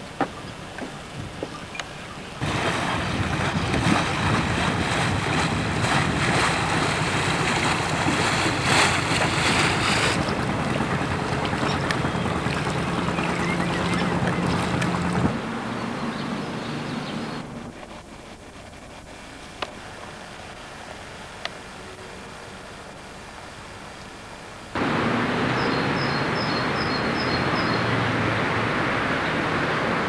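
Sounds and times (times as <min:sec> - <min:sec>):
boat engine drone: 0:00.0 - 0:30.0
rushing water: 0:00.0 - 0:30.0
wind on microphone: 0:02.4 - 0:15.4.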